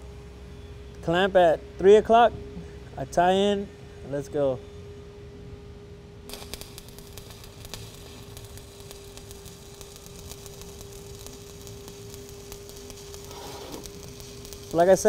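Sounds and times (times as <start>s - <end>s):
steady hum: 0.0s - 15.0s
welding arc crackling: 6.3s - 15.0s.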